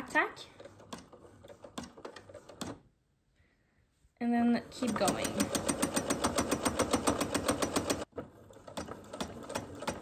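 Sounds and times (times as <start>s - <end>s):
sewing machine stitching: 0.0s - 2.8s, 4.6s - 10.0s.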